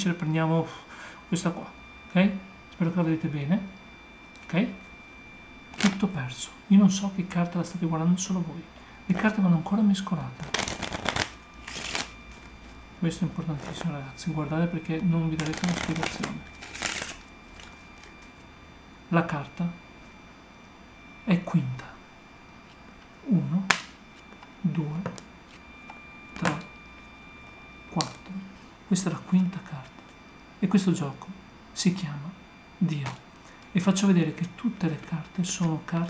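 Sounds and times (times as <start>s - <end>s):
cards being handled: 5.7s - 6.1s, 10.4s - 12.8s, 13.4s - 14.0s, 15.3s - 18.4s
playing cards riffle-shuffled: 5.7s - 6.1s, 10.4s - 12.8s, 13.4s - 14.0s, 15.4s - 18.4s.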